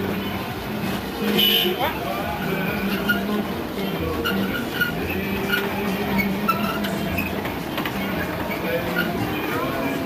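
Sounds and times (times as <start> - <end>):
carousel mechanical rumble: 0.0 - 10.0.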